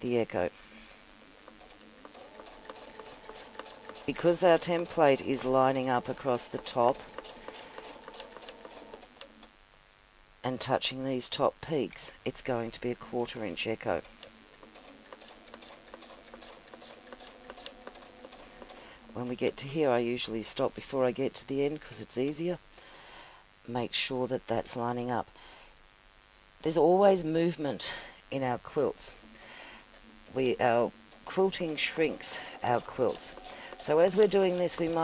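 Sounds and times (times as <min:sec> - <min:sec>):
sewing machine motor hum: 0:01.2 - 0:09.3, 0:14.6 - 0:19.1, 0:31.1 - 0:35.0
sewing needle ticking: 0:01.6 - 0:09.0, 0:14.6 - 0:18.8, 0:31.1 - 0:35.0.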